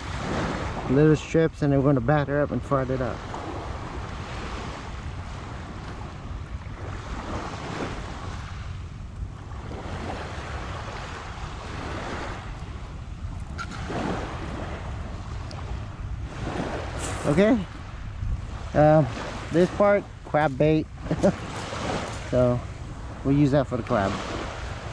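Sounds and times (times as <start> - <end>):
small waves on pebble shore: 0.0 - 1.1, 9.5 - 12.8, 13.4 - 20.0, 20.6 - 24.9
wind rumble on microphone: 0.0 - 24.9.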